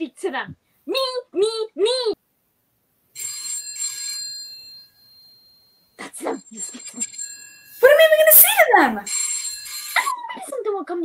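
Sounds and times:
telephone ringing: 3.1s - 10.4s.

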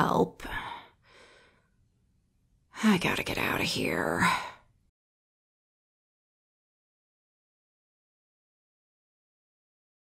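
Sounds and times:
woman speaking: 0.0s - 0.6s, 2.8s - 4.6s.

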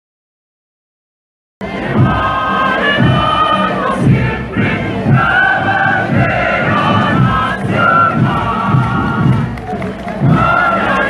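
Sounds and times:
chorus singing sustained notes: 1.6s - 9.4s.

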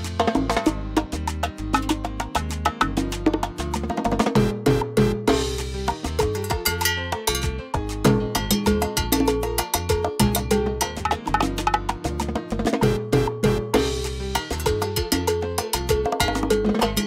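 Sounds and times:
salsa backing track: 0.0s - 17.0s.

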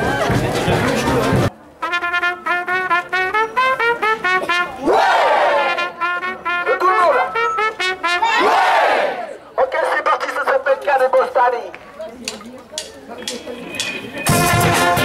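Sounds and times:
crowd noise: 0.0s - 15.0s
brass band playing: 1.4s - 9.3s, 14.2s - 15.0s.

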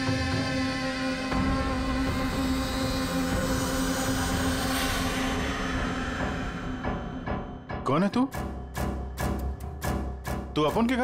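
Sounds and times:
droning suspense score: 0.0s - 10.9s.

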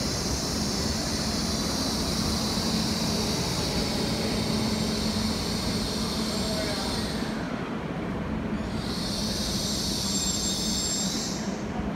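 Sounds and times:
train brakes squealing hiss: 0.0s - 11.9s
train rumble: 0.0s - 11.9s
thin high whistle: 9.0s - 11.6s.

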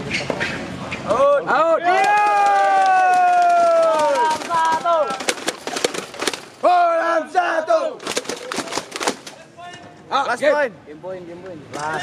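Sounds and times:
person shouting a cheer: 1.8s - 4.6s.

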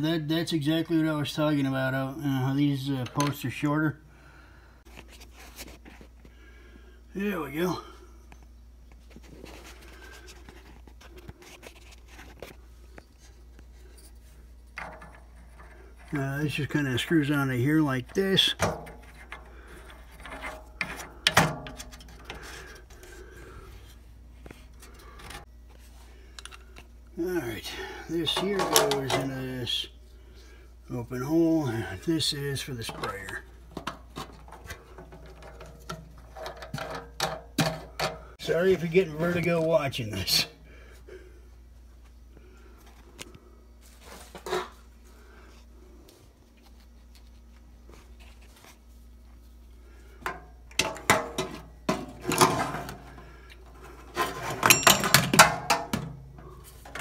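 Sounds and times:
low steady hum: 0.0s - 57.0s.

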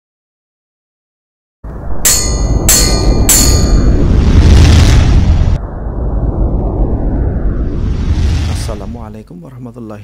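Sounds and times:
loud low rumble: 1.7s - 9.3s
sharp metallic bell strikes: 2.0s - 4.1s.

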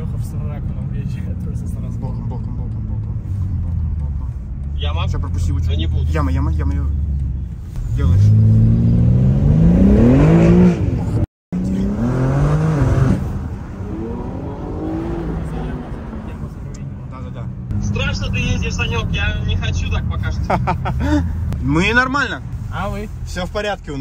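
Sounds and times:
car engine accelerating: 0.0s - 24.0s.

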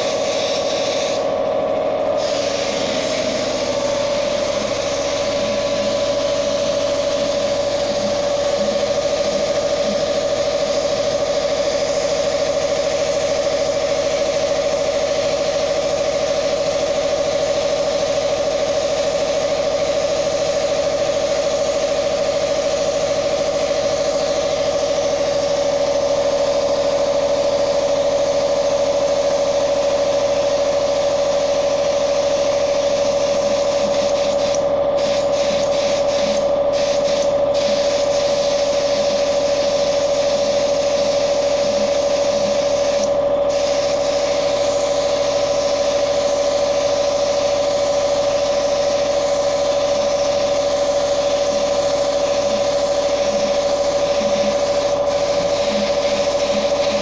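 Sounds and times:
paint spraying hiss: 0.0s - 1.4s, 2.2s - 57.0s
spray machine hum: 0.0s - 57.0s.

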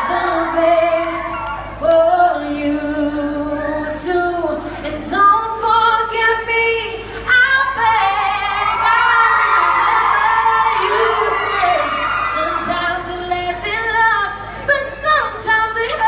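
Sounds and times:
woman singing through pa: 0.0s - 16.0s.

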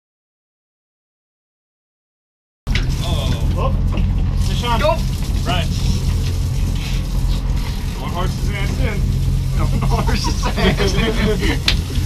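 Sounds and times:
boat engine droning: 2.7s - 12.0s
indistinct voices: 2.9s - 11.8s.

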